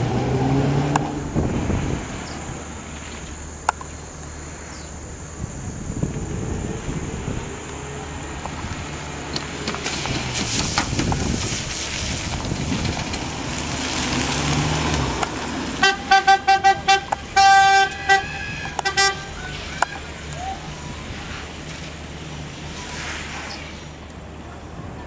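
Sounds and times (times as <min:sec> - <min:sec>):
car engine revving: 0:00.0 - 0:24.4
car horn tooting: 0:15.8 - 0:20.1.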